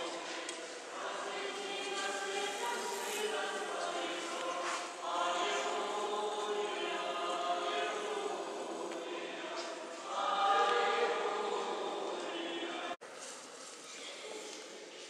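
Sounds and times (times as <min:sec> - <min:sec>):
choir singing long held notes: 0:00.0 - 0:13.0.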